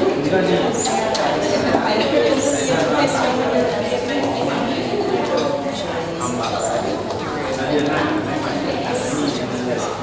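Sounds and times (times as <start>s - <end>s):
crowd chatting: 0.0s - 10.0s.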